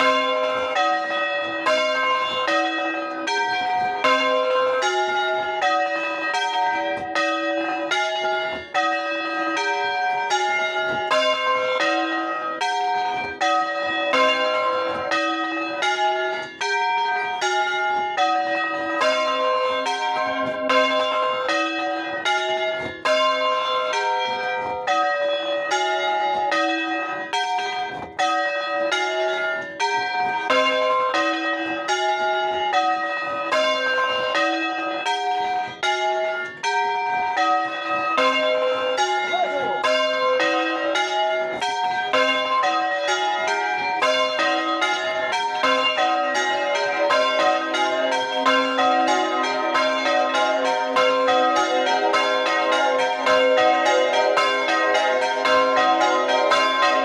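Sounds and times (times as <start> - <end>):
small church bells ringing: 0.0 - 57.0.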